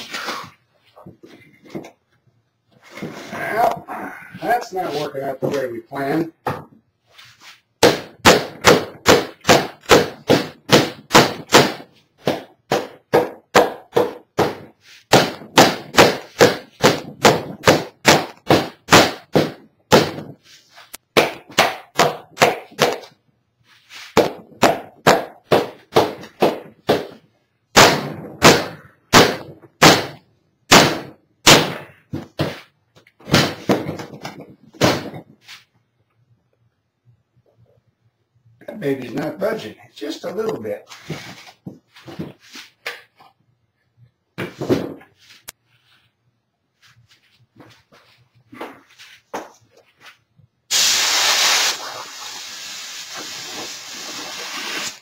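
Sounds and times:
mallet striking mold: 7.8 - 20.3, 24.2 - 32.6.

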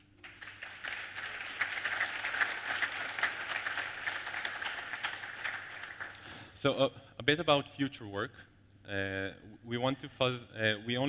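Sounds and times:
audience applause: 0.2 - 6.3.

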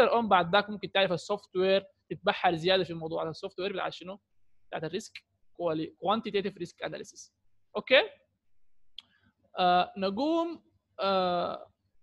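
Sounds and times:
man speaking: 0.0 - 8.2, 9.6 - 11.7.

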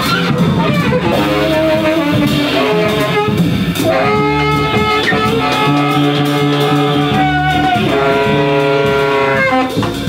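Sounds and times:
drums: 0.0 - 10.0
tenor saxophone long note: 1.0 - 9.8.

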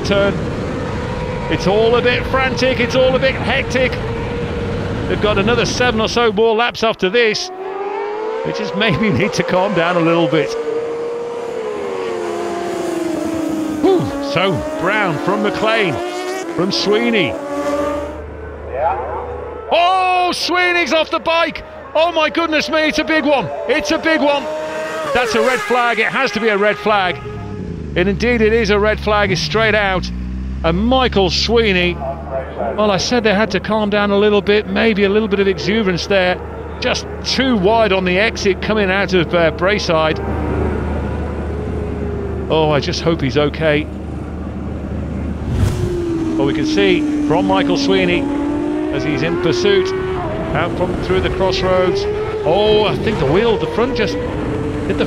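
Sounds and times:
racing motorcycles passing: 0.0 - 6.4, 7.2 - 55.0.

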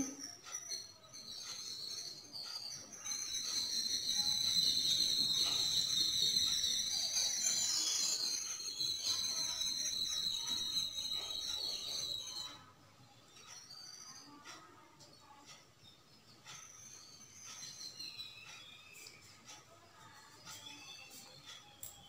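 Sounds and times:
shrill high-pitched whistling tone: 0.0 - 14.8, 16.4 - 22.0.

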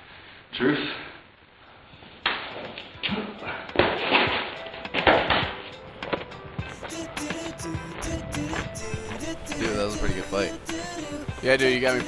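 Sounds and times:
rough rustling and scuffing: 3.8 - 10.5
music with repeating beat: 4.3 - 12.0.

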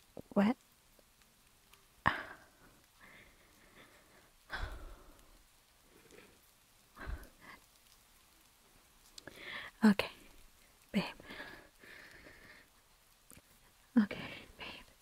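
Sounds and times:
woman's breathy exhales and sighs: 2.1 - 5.2, 7.0 - 7.6.

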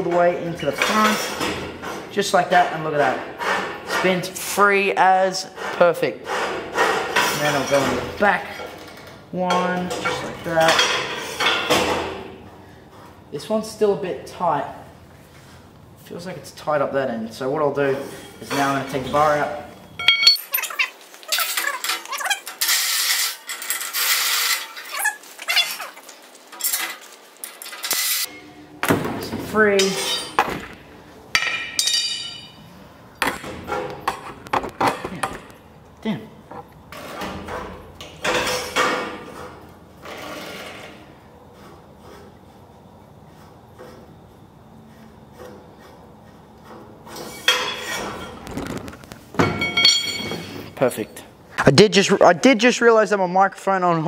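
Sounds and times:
metal clink: 20.0 - 20.8, 31.4 - 32.6, 49.4 - 50.7
nylon bush squeaking: 24.0 - 26.5.

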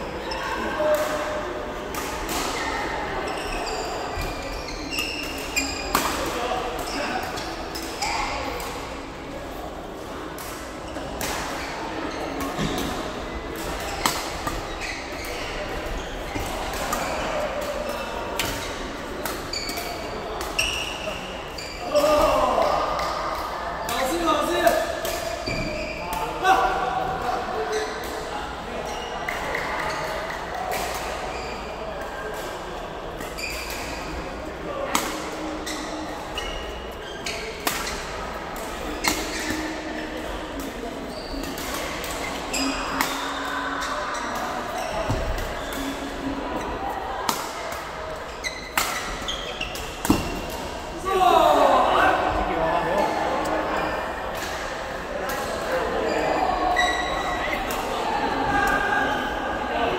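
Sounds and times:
shoes squeaking on court floor: 2.0 - 8.9, 10.9 - 22.6, 23.8 - 26.1, 27.6 - 32.6, 33.2 - 34.2, 34.9 - 50.8, 55.7 - 57.9
rackets hitting shuttlecock: 37.4 - 46.3, 48.6 - 50.7.

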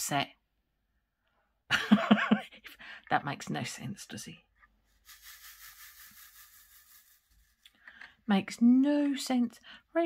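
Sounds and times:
scratchy rhythmic rubbing: 4.9 - 7.7.

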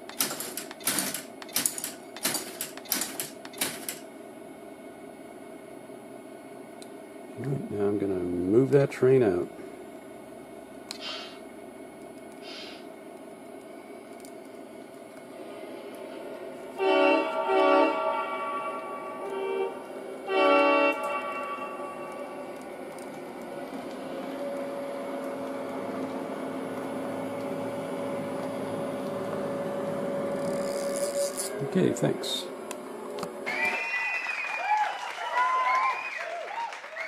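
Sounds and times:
locomotive engine running: 15.2 - 33.4
model locomotive horn blasts: 16.7 - 23.1.

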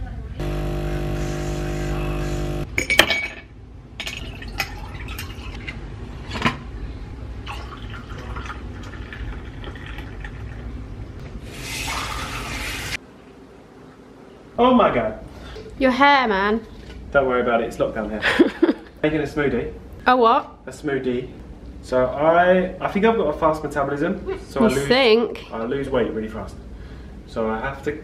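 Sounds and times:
coffee machine buzzing: 0.4 - 2.7
glassware clinking: 2.8 - 4.9
liquid pouring into glass: 4.0 - 5.6, 7.4 - 10.7.

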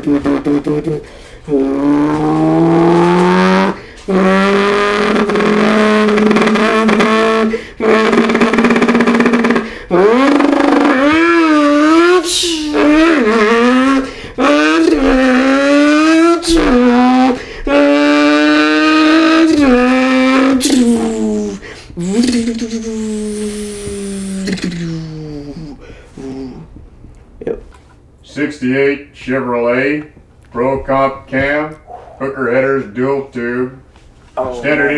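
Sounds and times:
man imitating engine with mouth: 0.0 - 27.2
hissing pops: 3.1 - 25.8.

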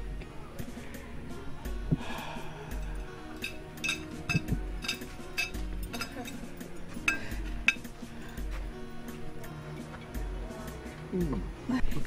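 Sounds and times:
background music with low pulse: 0.0 - 12.0.

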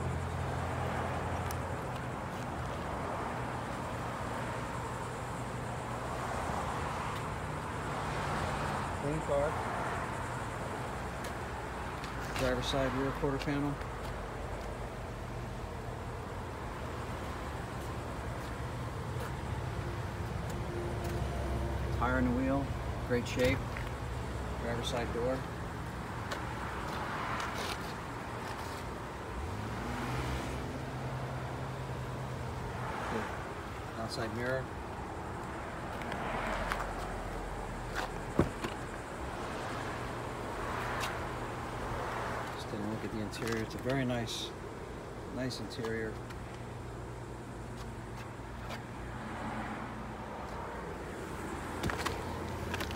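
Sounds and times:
outdoor background noise: 0.0 - 52.9
car door thud: 38.3 - 38.8.

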